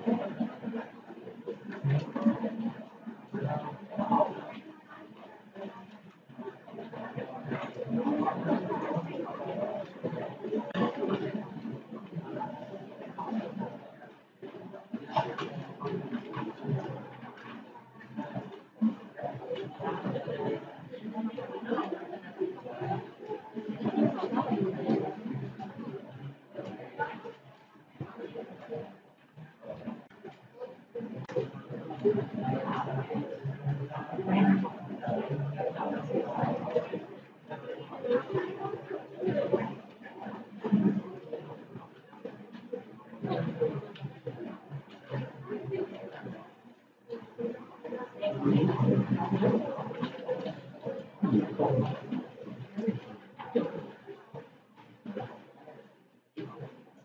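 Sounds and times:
indistinct speech: 0:00.0 - 0:28.8, 0:29.7 - 0:54.0.

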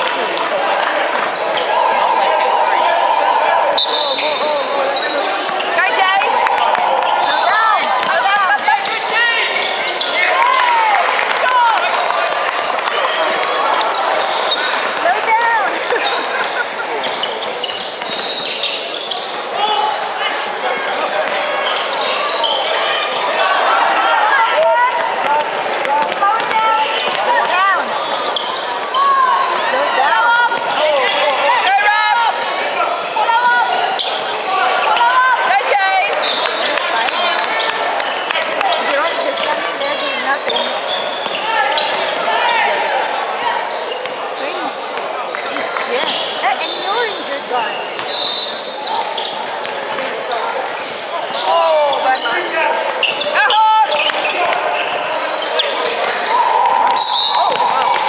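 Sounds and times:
sneakers squeaking: 0:00.0 - 0:33.2, 0:33.8 - 0:58.0
ball bouncing on hardwood court: 0:24.9 - 0:27.6.

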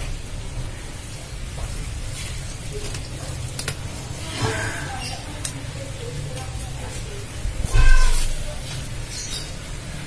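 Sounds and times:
charcoal clicking and scraping: 0:02.2 - 0:04.0.

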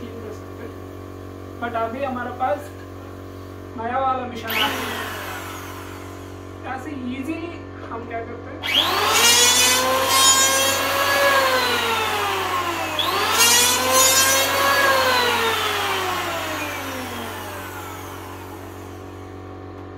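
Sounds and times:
planer cutting wood: 0:04.4 - 0:06.7, 0:08.6 - 0:19.6
electric planer motor whine: 0:04.5 - 0:06.7, 0:08.6 - 0:19.9.

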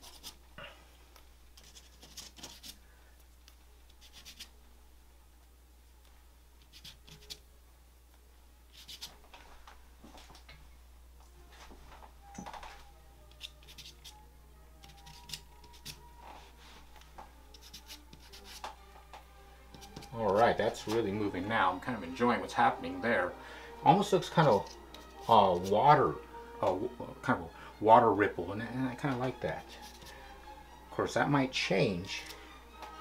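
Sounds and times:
charcoal scraping on paper: 0:00.0 - 0:00.4, 0:01.6 - 0:02.8, 0:04.0 - 0:04.5, 0:06.6 - 0:07.4, 0:08.7 - 0:09.2, 0:13.3 - 0:14.2, 0:14.8 - 0:16.8, 0:17.5 - 0:18.8, 0:19.7 - 0:21.1, 0:24.4 - 0:25.8, 0:29.6 - 0:30.2
low steady hum: 0:00.0 - 0:33.0.

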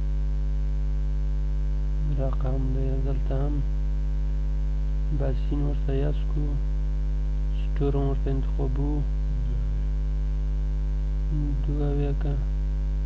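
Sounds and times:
electrical mains hum: 0:00.0 - 0:13.0
man speaking: 0:02.0 - 0:03.7, 0:05.1 - 0:06.6, 0:07.5 - 0:09.9, 0:11.3 - 0:12.5.

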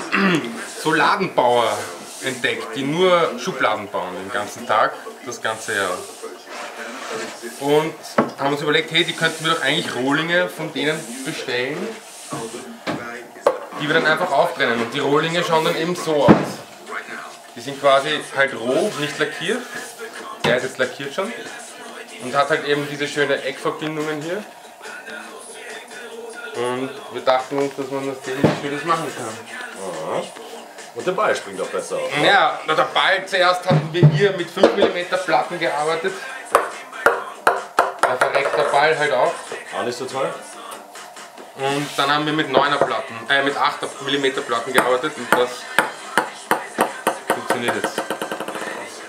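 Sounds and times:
man speaking: 0:06.8 - 0:19.8, 0:26.6 - 0:30.4, 0:31.0 - 0:36.3, 0:41.6 - 0:45.7
knocks on wooden tabletop: 0:08.2 - 0:08.4, 0:16.3 - 0:16.6, 0:28.4 - 0:28.6, 0:36.6 - 0:38.6, 0:45.8 - 0:48.6.

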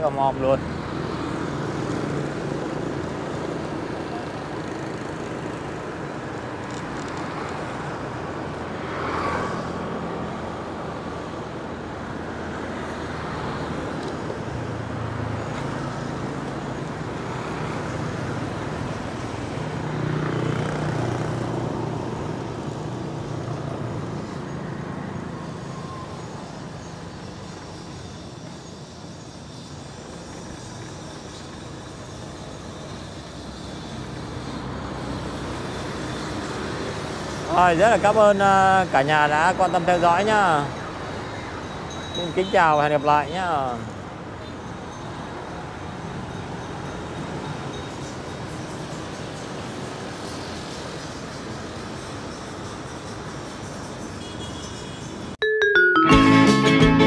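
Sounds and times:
motorbike engines: 0:00.0 - 0:57.0
tyres on road: 0:00.0 - 0:57.0
vehicles passing close: 0:00.0 - 0:57.0.

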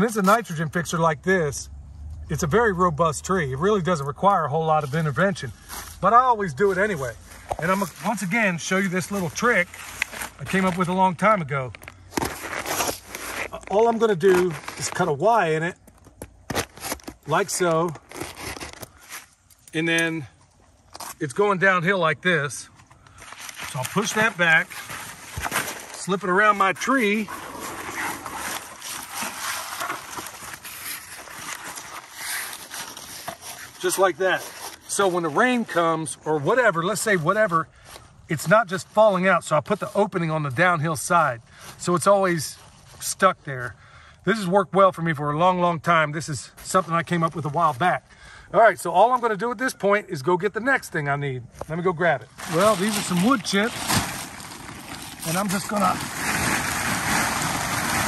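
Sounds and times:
cardboard scraping over leaves: 0:03.5 - 0:15.7, 0:16.5 - 0:19.4, 0:23.2 - 0:35.9, 0:51.8 - 0:58.0
crisp crackles: 0:03.9 - 0:19.8, 0:23.0 - 0:35.8, 0:52.3 - 0:58.0
wood chips pouring onto cardboard: 0:52.4 - 0:58.0.

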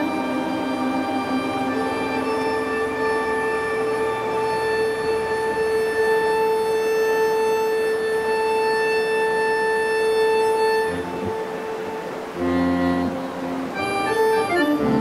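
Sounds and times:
electronic drone: 0:00.0 - 0:15.0.

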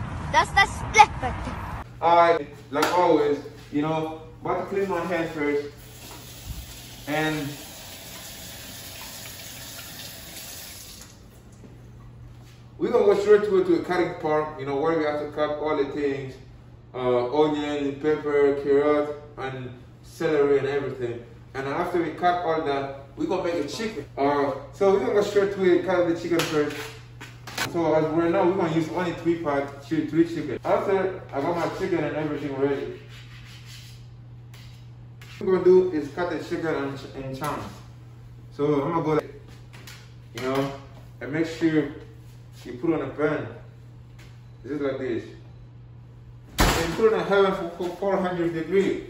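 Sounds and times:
faucet running: 0:05.7 - 0:11.3
steady low hum: 0:11.3 - 0:49.0.

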